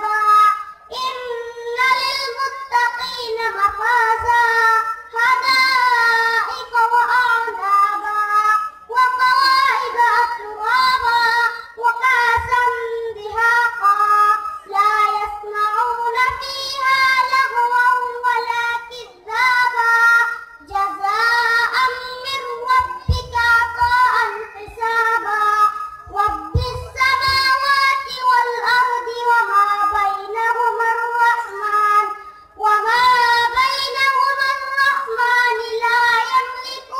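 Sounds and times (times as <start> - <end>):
boy chanting recitation into microphone: 0.0 - 36.9.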